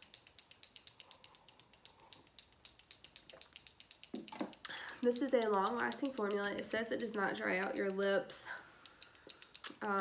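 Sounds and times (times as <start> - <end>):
small tube shaken with light clicks: 0.0 - 10.0.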